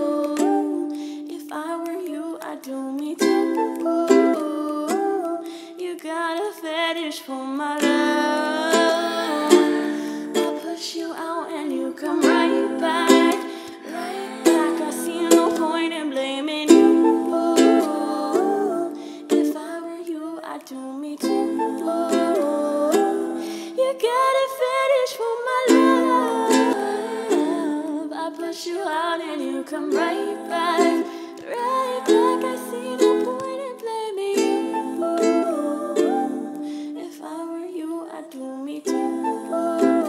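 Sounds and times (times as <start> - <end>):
ukulele strumming: 0.0 - 37.4, 38.8 - 40.0
woman singing: 0.0 - 40.0.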